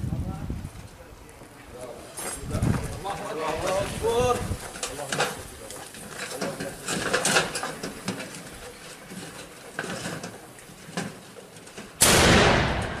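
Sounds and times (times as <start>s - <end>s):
loud blast: 12.0s - 13.0s.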